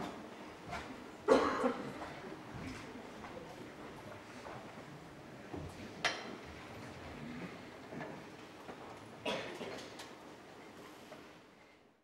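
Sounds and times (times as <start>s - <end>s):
low hall noise: 0.0s - 12.0s
person coughing: 1.3s - 1.9s, 9.3s - 9.7s.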